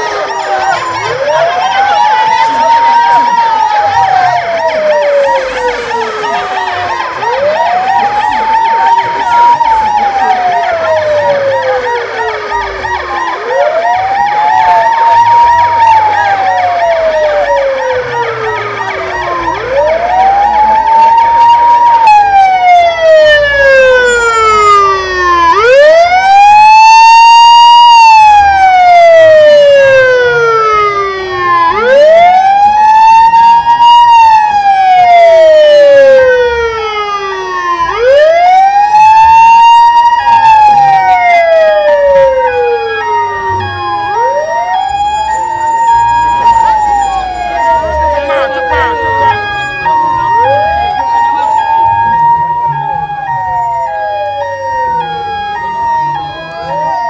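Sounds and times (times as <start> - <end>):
ambulance siren wailing: 0.0 - 57.0.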